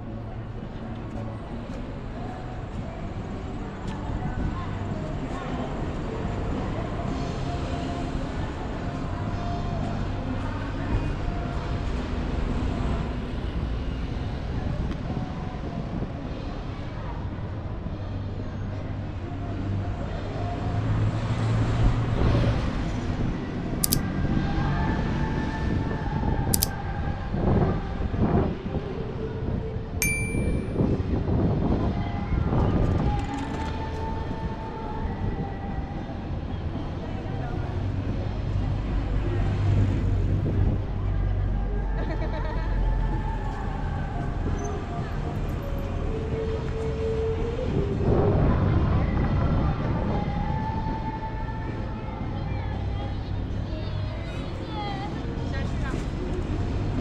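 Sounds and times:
chatter of passers-by: 0:00.0 - 0:57.0
sharp clicks: 0:23.8 - 0:24.0
short bright ding: 0:30.0 - 0:30.9.

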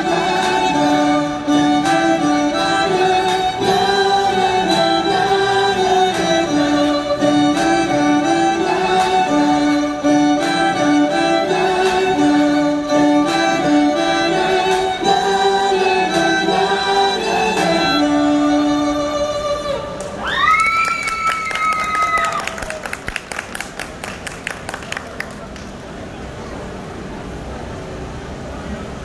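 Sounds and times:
violin melody with accompaniment: 0:00.0 - 0:20.0
short sharp claps: 0:20.0 - 0:25.8.

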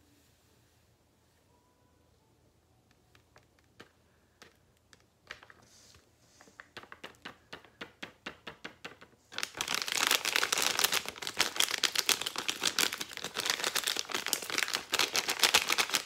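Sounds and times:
plastic bag crinkling: 0:09.3 - 0:16.0.

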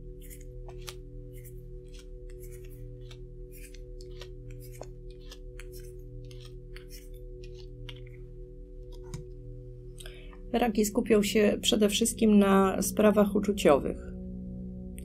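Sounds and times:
low drone: 0:00.0 - 0:15.0
playing cards dealt onto table: 0:00.3 - 0:08.0.

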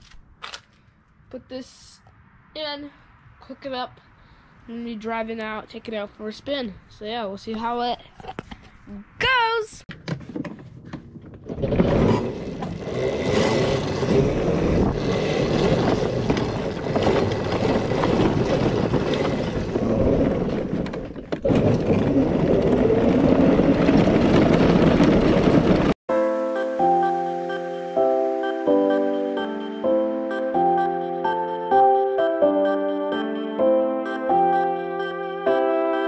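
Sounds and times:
tyre and wind noise on gravel: 0:10.3 - 0:26.0.

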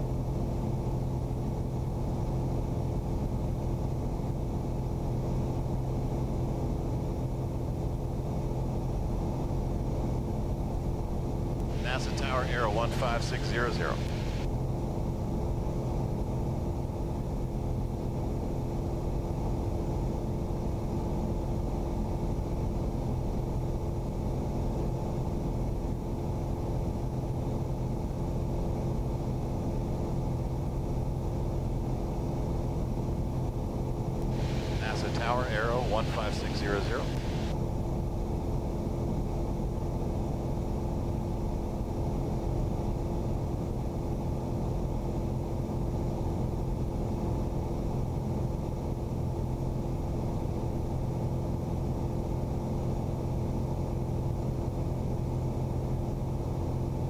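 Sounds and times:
airplane engine and propeller droning: 0:00.0 - 0:48.2
radio voice call: 0:11.6 - 0:14.5, 0:34.3 - 0:37.5.

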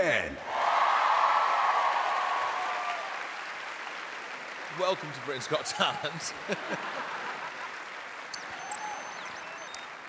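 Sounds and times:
audience applauding and cheering: 0:00.5 - 0:10.0.

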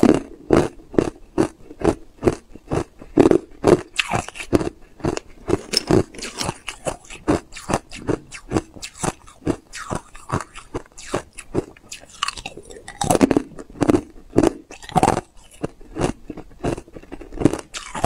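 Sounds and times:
ice being chewed: 0:00.0 - 0:18.0.

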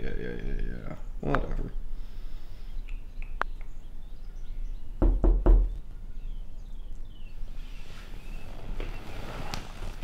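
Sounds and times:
knocks on a door: 0:05.0 - 0:05.8.

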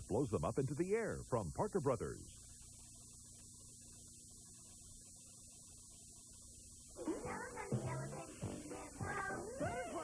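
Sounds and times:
low mains hum: 0:00.0 - 0:10.0.

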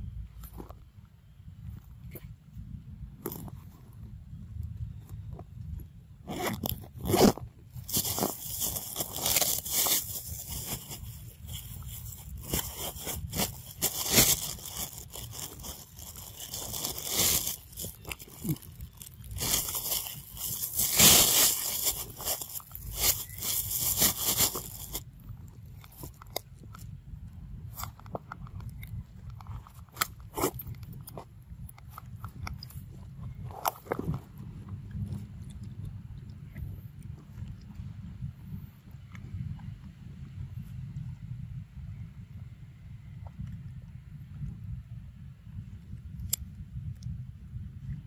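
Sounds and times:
crunching and rustling: 0:06.2 - 0:27.0, 0:27.6 - 0:35.9.

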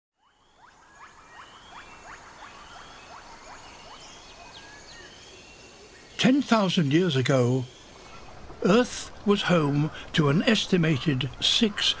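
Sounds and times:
faint steady hiss: 0:01.2 - 0:12.0.

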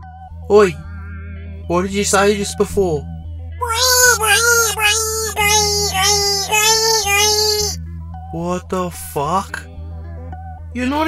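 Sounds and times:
high childlike singing voice: 0:03.6 - 0:07.8.

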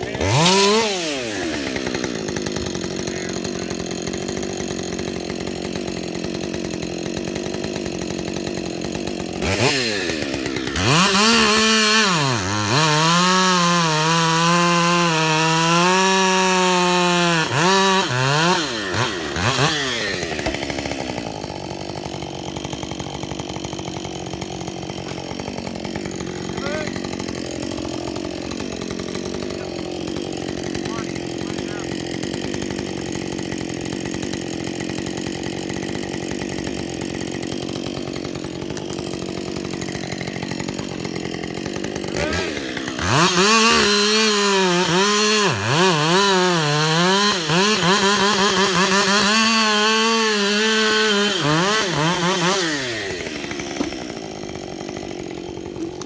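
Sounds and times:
chainsaw cutting wood: 0:00.0 - 0:56.0
chainsaw revving and idling: 0:00.0 - 0:56.0.

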